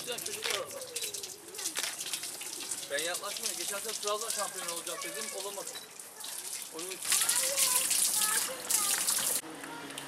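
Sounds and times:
water running from a tap: 0:00.0 - 0:09.4
water splashing over hands: 0:00.0 - 0:09.4.

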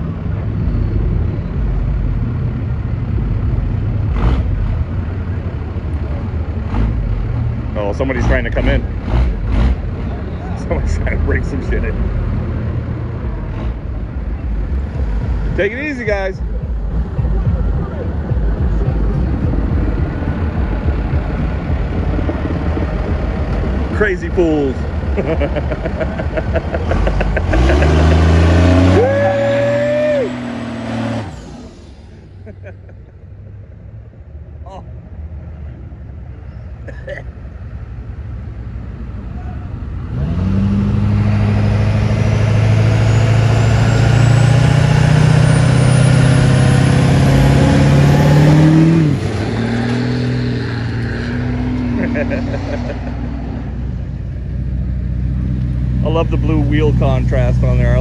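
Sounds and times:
truck engine revving: 0:00.0 - 0:33.1, 0:39.1 - 0:58.0.

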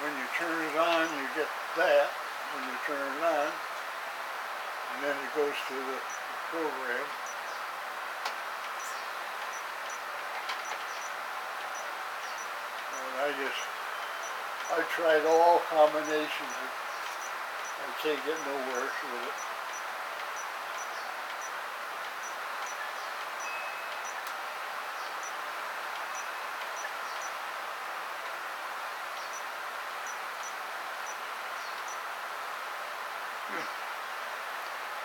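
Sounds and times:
steady hiss: 0:00.0 - 0:35.0
faint high insect chirps: 0:08.7 - 0:15.2, 0:29.1 - 0:32.1.

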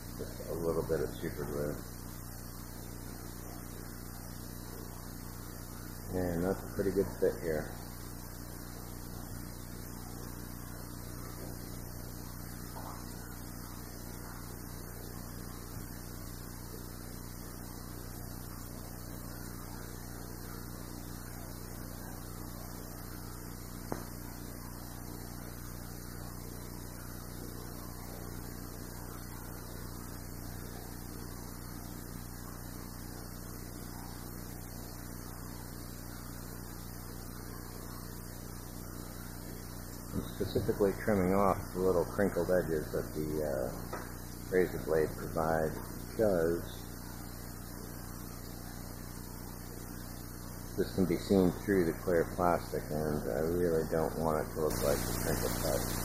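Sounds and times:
low electrical hum: 0:00.0 - 0:56.0
recording hiss: 0:00.0 - 0:56.0.

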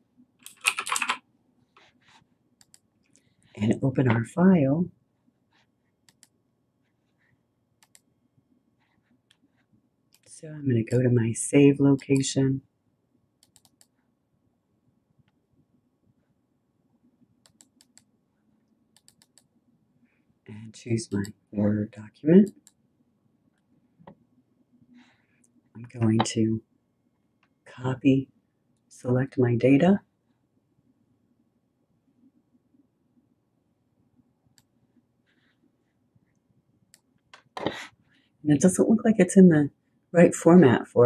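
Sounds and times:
typing on computer keyboard: 0:00.4 - 0:01.2, 0:13.4 - 0:13.9
faint computer mouse clicks: 0:06.1 - 0:06.4, 0:07.8 - 0:08.1, 0:13.4 - 0:14.0, 0:17.4 - 0:18.1, 0:19.0 - 0:19.5
woman speaking: 0:25.8 - 0:26.6, 0:38.5 - 0:41.0.

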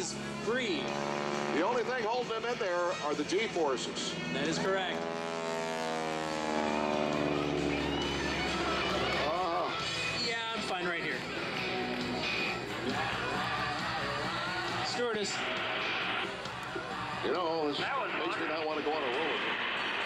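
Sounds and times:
voices: 0:00.0 - 0:05.0, 0:06.6 - 0:19.6
biplane engine droning overhead: 0:00.0 - 0:13.0, 0:13.7 - 0:20.0
background music: 0:00.0 - 0:20.0.

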